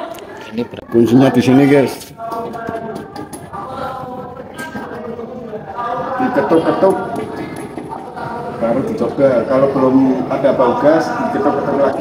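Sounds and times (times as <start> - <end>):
faint person singing: 1.4 - 9.0.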